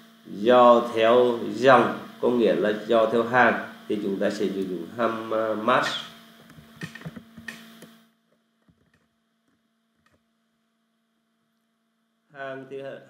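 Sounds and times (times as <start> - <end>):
faint low electrical hum: 0.0 - 13.0.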